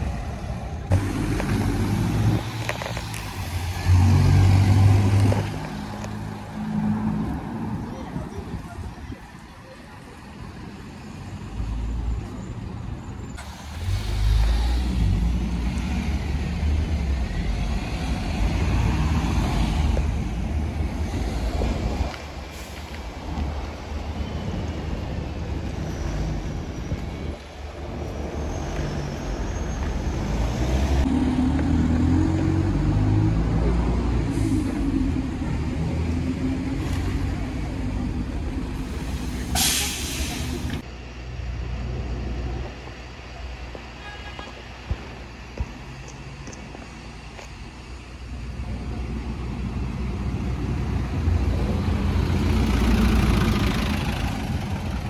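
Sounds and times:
buses and cars passing: 0.0 - 55.0.

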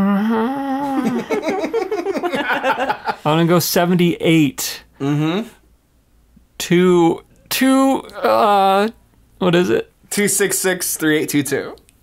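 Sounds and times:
man humming: 0.0 - 1.6, 5.0 - 5.6
man laughing: 0.8 - 3.3.

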